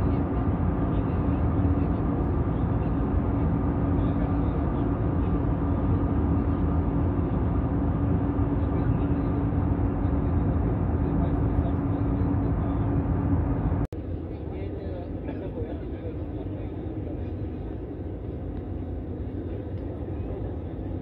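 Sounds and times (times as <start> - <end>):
jet engines droning in cabin: 0.0 - 21.0.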